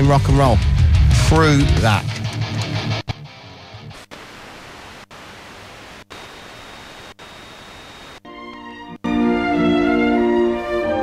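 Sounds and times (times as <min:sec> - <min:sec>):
faint radio station: 0:03.9 - 0:08.3
radio static hiss: 0:04.0 - 0:08.3.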